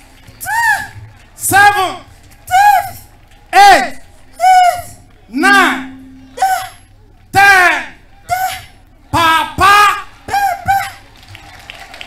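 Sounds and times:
scattered claps: 0.0 - 4.4, 9.2 - 12.0
low crowd noise: 0.0 - 12.0
short voiced syllables: 4.4 - 11.0.

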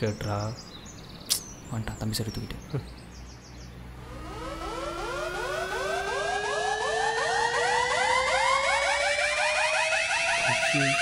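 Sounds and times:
synthetic tone rising with pulsing flutter: 4.0 - 11.0.

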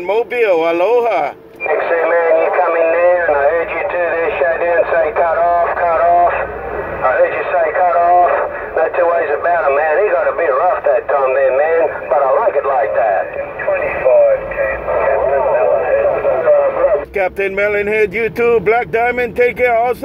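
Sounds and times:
voices over radio speaker: 0.0 - 20.0.

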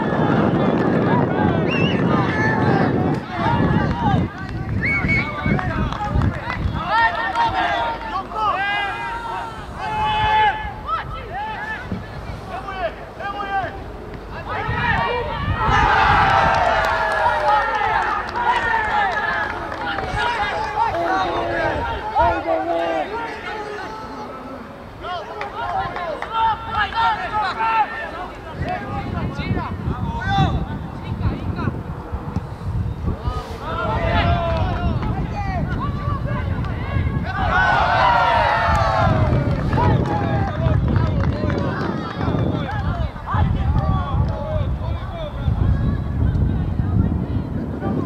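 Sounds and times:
wind rumble on microphone: 0.0 - 12.9, 13.7 - 22.6, 28.4 - 48.0
crowd shouting and yelling: 0.0 - 32.4, 33.0 - 48.0
people shouting: 6.8 - 11.9, 36.8 - 40.5.

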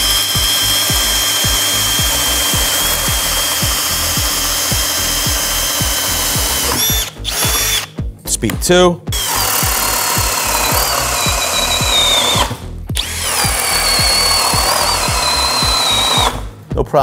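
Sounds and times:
cordless drill boring into wood: 0.0 - 7.9, 9.1 - 16.5.

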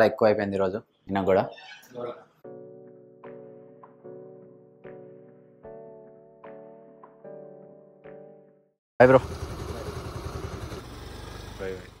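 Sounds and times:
scooter engine idling: 9.0 - 12.0.

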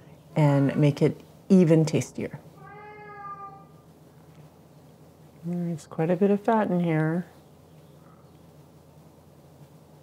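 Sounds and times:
faint low hum: 0.0 - 10.0
cat meowing: 2.6 - 3.8.

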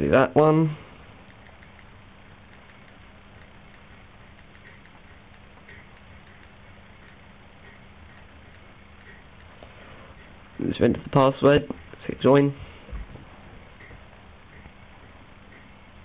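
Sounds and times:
faint background hum: 0.0 - 16.0
touchscreen keyboard ticks: 1.0 - 9.6.

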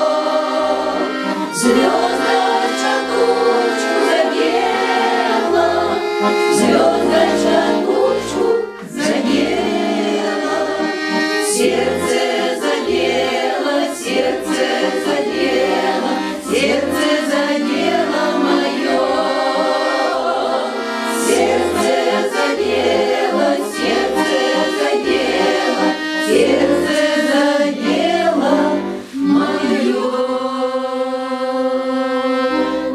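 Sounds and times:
accordion bass rhythm: 0.0 - 32.9
women's choir singing: 0.0 - 32.9.

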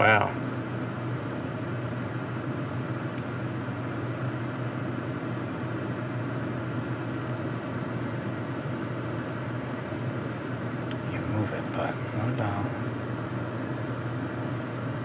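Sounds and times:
fan blowing air: 0.0 - 15.0.

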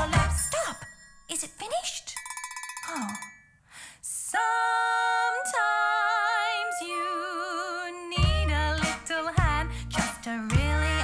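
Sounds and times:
metal triangle rolled rapidly: 0.0 - 3.5
woman singing a long held note: 4.3 - 8.5.

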